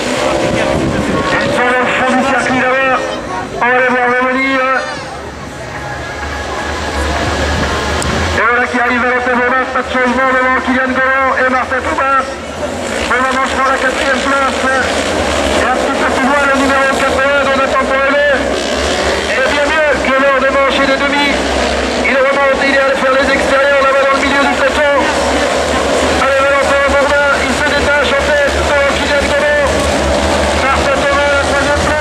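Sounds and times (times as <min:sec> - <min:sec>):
commentator over loudspeakers: 0:00.0 - 0:32.0
race car engines revving: 0:00.0 - 0:32.0.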